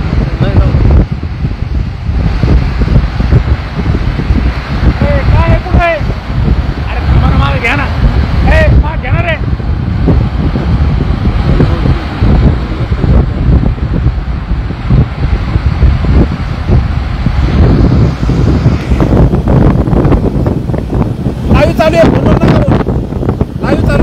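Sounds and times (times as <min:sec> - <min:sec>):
vehicles driving on highway: 0:00.0 - 0:24.0
wind buffeting microphone: 0:00.0 - 0:24.0.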